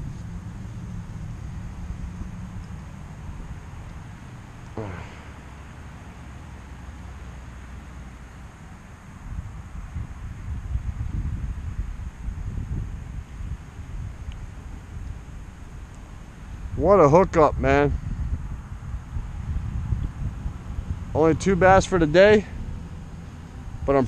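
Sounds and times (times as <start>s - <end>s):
wind buffeting microphone: 0.0s - 5.5s, 9.2s - 24.0s
man speaking: 4.8s - 5.3s, 16.8s - 17.9s, 21.2s - 22.5s.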